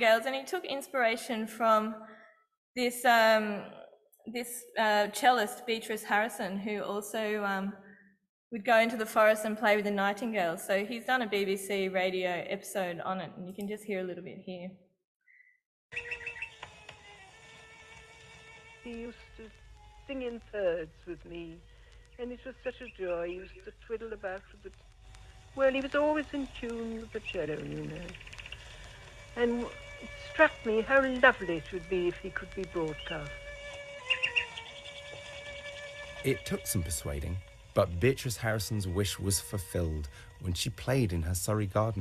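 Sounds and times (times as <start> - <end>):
nightingale singing: 15.3 - 16.7, 34.0 - 35.1
held cello note: 36.2 - 42.0.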